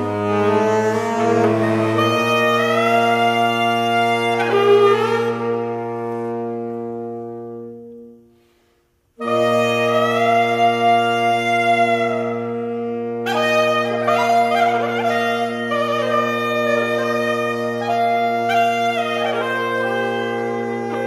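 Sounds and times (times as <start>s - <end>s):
saxophone quartet playing: 0.0s - 21.0s.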